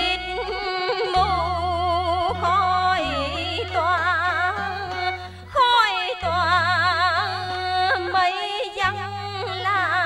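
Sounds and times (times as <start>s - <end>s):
woman singing with vibrato: 0.0s - 10.0s.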